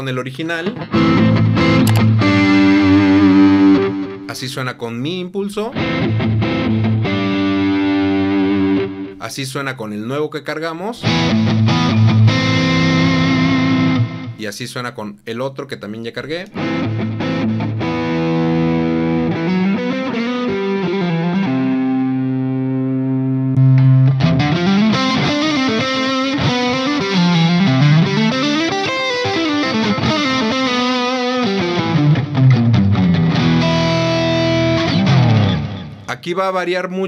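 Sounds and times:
distorted electric guitar lead: 0:00.0 - 0:04.4, 0:05.7 - 0:09.2, 0:11.0 - 0:14.4, 0:16.5 - 0:36.1.

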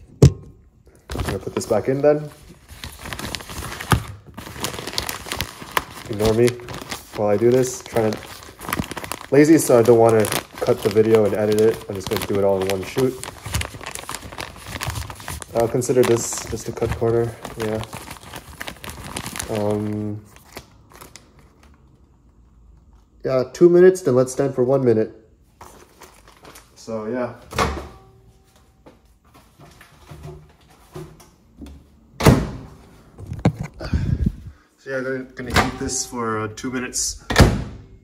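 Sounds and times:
plastic film crinkling: 0:00.9 - 0:23.0, 0:25.6 - 0:26.8
plastic film tearing: 0:02.5 - 0:21.5.

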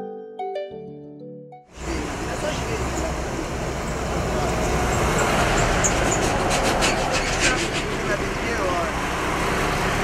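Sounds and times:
truck driving past: 0:01.7 - 0:10.0.

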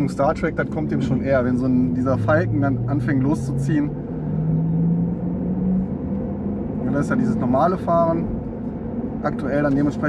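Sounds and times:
electric car drive hum: 0:00.0 - 0:10.0
low road rumble: 0:00.0 - 0:10.0.

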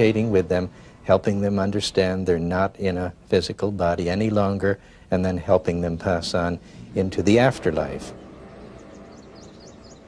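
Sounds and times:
low steady hum: 0:00.0 - 0:10.0
faint birdsong chirps: 0:04.2 - 0:10.0.

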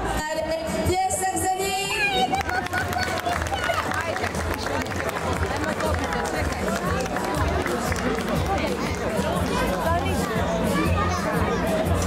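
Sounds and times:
crowd chatter: 0:00.0 - 0:12.0
music playing: 0:00.0 - 0:12.0.

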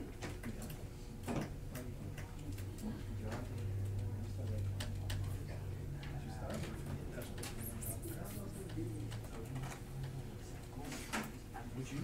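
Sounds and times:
faint indistinct voices: 0:00.0 - 0:12.0.

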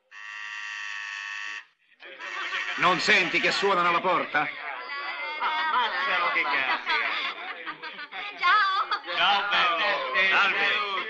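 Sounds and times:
doorbell buzzer: 0:00.1 - 0:01.6.

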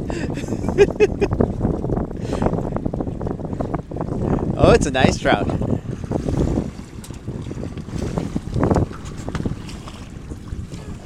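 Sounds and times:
water moving around a boat: 0:00.0 - 0:11.0
wind buffeting microphone: 0:00.0 - 0:11.0.

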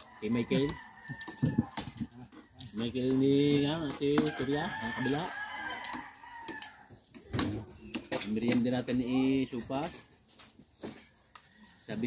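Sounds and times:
rooster crowing: 0:00.0 - 0:02.0, 0:04.2 - 0:07.0
cutlery clinking on plates: 0:07.4 - 0:09.0.

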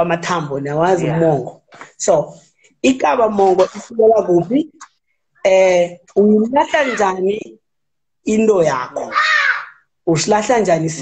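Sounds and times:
man speaking: 0:00.0 - 0:07.6, 0:08.2 - 0:09.2, 0:10.0 - 0:11.0
drawn-out high-pitched vocal sound: 0:09.0 - 0:09.9.

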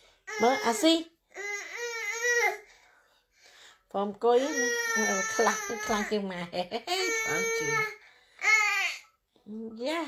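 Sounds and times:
baby whining and fussing: 0:01.3 - 0:02.7, 0:07.0 - 0:09.1.

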